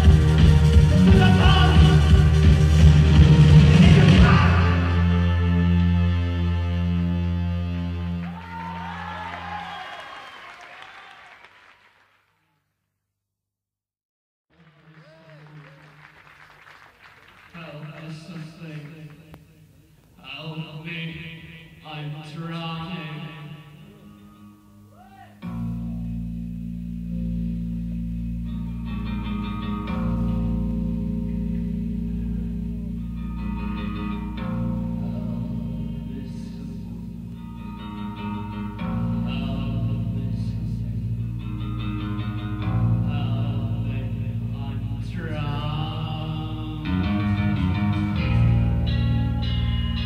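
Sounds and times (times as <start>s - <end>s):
low bass drone: 0.0s - 8.2s, 25.8s - 50.0s
guitar: 0.0s - 10.0s, 18.6s - 50.0s.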